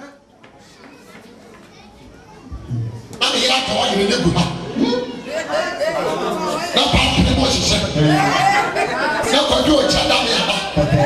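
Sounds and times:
faint background voices: 0:00.0 - 0:03.4
loud man's voice: 0:03.2 - 0:11.0.

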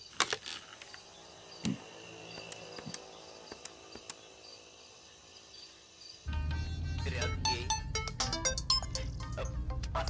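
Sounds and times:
crickets chirping: 0:00.0 - 0:06.3.

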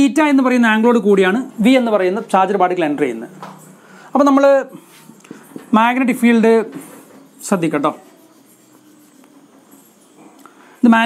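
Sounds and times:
marker scratching on whiteboard: 0:04.8 - 0:10.4.

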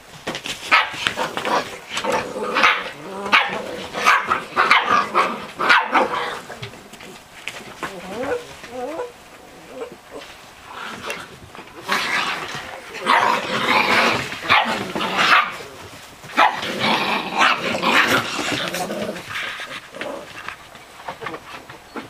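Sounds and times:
puppies barking and growling: 0:00.6 - 0:22.0.

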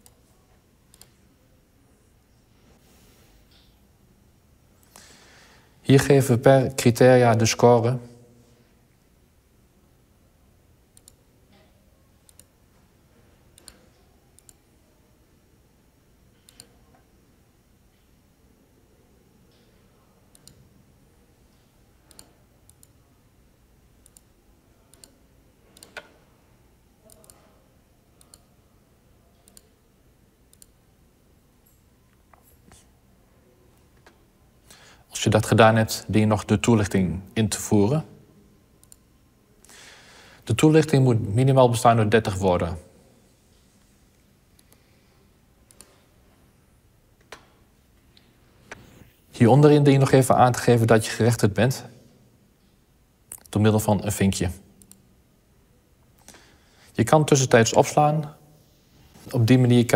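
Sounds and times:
faint computer mouse clicks: 0:00.9 - 0:01.2, 0:11.0 - 0:11.2, 0:12.3 - 0:12.5, 0:16.4 - 0:17.0, 0:20.3 - 0:20.6, 0:22.1 - 0:23.0, 0:24.9 - 0:26.2, 0:27.0 - 0:27.4, 0:29.4 - 0:29.7, 0:30.5 - 0:30.8, 0:44.6 - 0:44.9, 0:45.7 - 0:46.0.

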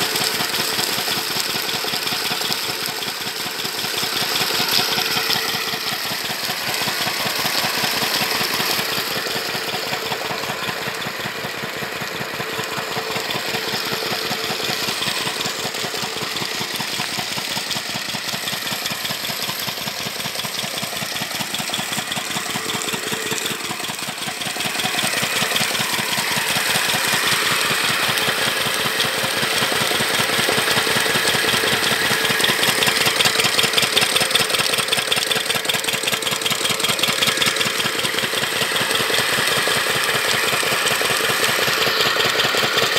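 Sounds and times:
diesel engine chugging: 0:00.0 - 0:42.9
water gushing from pipe: 0:00.0 - 0:42.9.

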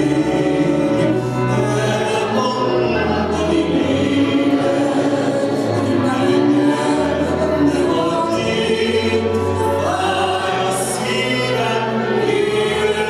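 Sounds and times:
man and woman singing duet: 0:00.0 - 0:13.0.

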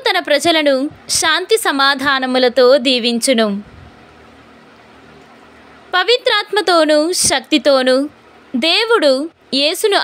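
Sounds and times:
woman's voice: 0:00.0 - 0:03.9, 0:05.9 - 0:10.0
faint recording hiss: 0:00.0 - 0:10.0.

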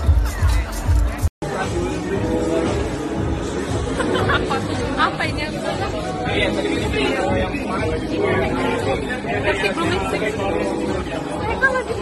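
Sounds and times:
background music: 0:00.0 - 0:12.0
people chattering: 0:00.0 - 0:12.0.

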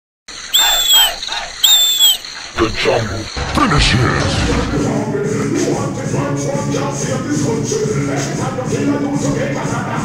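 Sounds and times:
low bird chirps: 0:00.4 - 0:02.5
whistled bird calls: 0:00.4 - 0:02.5.

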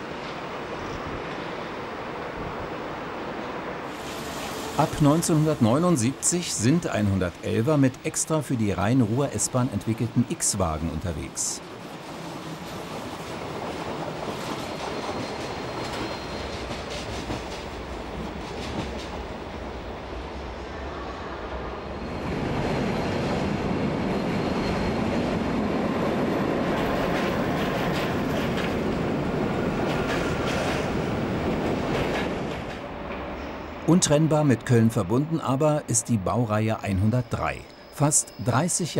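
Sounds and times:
train wheels rumbling on rails: 0:11.7 - 0:20.8, 0:21.7 - 0:35.5
train clatter: 0:12.1 - 0:19.5, 0:22.2 - 0:33.7.

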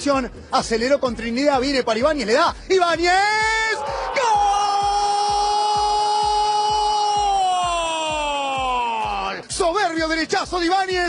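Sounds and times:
background music with beat: 0:00.0 - 0:11.0
commentator shouting goal: 0:02.9 - 0:11.0.

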